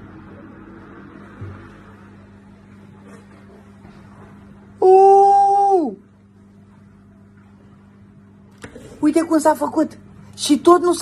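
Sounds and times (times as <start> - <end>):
faint steady hum: 0.0 - 11.0
man exclaiming ooh: 4.8 - 6.0.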